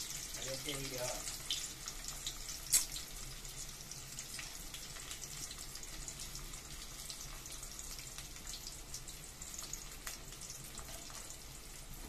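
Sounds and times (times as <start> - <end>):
onion sizzling in oil: 0.0 - 12.0.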